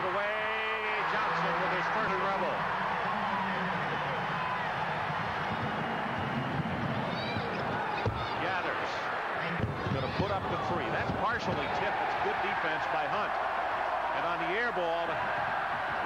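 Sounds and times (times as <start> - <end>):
arena crowd noise: 0.0 - 16.0.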